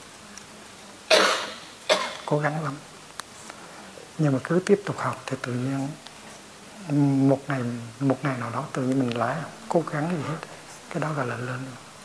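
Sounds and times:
person coughing: 1.1 - 2.3.

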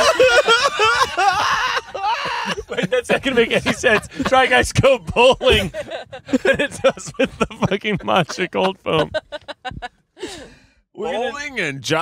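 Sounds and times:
breathy sigh: 10.2 - 10.8.

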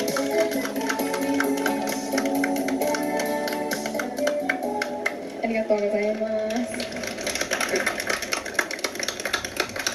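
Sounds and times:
audience applause: 6.8 - 9.9.

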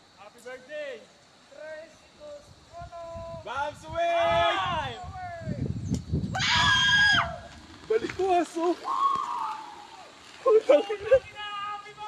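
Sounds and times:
person screaming on a ride: 6.4 - 7.4.

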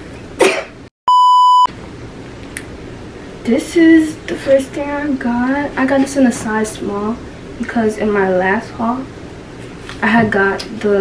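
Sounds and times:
person coughing: 0.4 - 0.8
censor bleep: 1.1 - 1.7.

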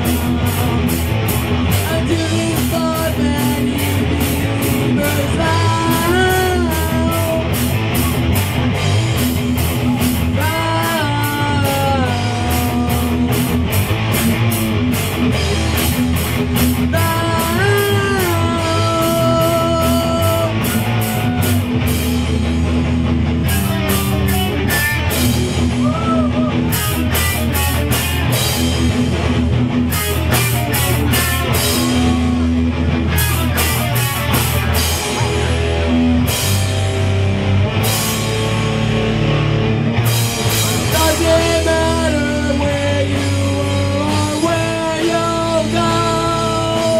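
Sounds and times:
rock band playing live: 0.0 - 46.9.

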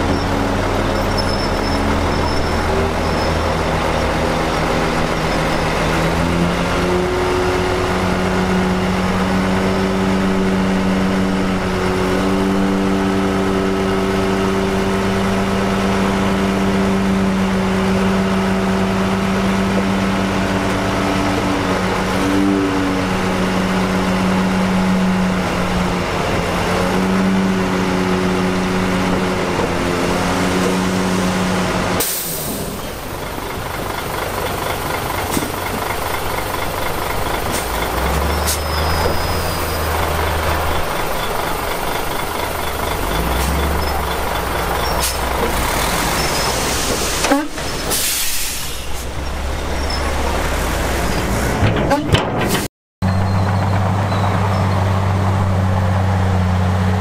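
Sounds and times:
heavy diesel engine under load: 0.0 - 57.0.

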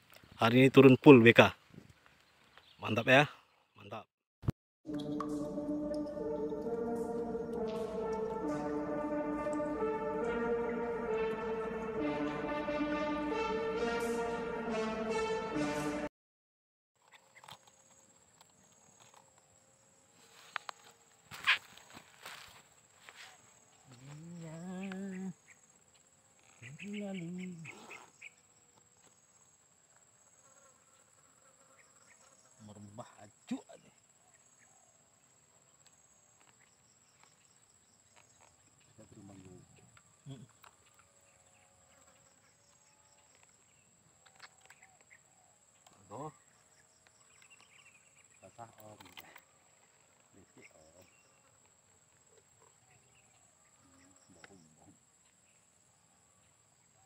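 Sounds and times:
steady thin high tone: 4.9 - 16.1.

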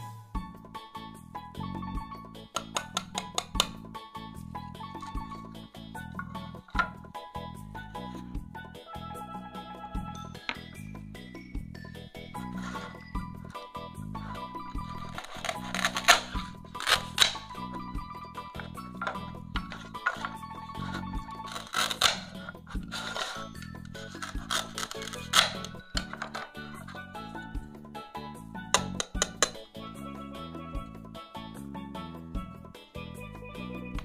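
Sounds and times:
background music: 0.0 - 34.0
velcro ripping: 14.8 - 17.7, 19.7 - 27.0.

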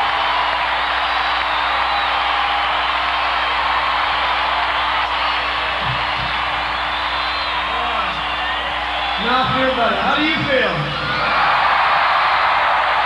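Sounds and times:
stadium crowd cheering: 0.0 - 13.0
whistles: 1.0 - 3.5, 5.1 - 9.6.

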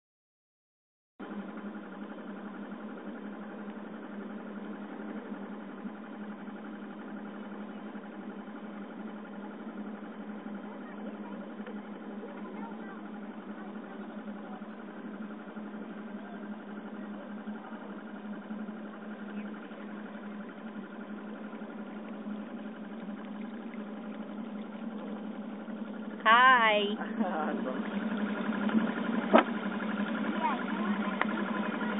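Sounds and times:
boat engine humming: 1.2 - 31.9.

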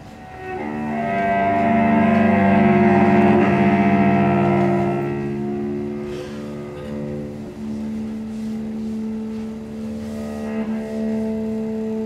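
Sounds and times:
cello bowed drone: 0.0 - 12.0.

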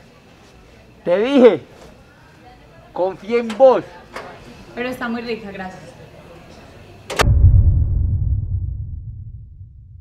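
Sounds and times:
deep rumbling boom: 7.2 - 10.0
whooshing crack: 7.2 - 10.0.

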